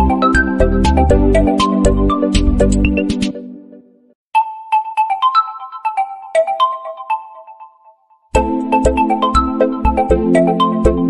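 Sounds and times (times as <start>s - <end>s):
phone ringtone melody: 4.4s - 11.0s.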